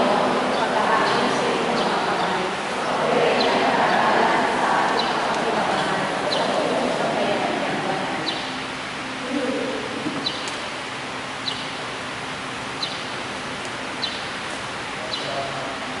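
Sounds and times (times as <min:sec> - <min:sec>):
distant murmur: 0:00.0 - 0:16.0
faint low hum: 0:00.0 - 0:16.0.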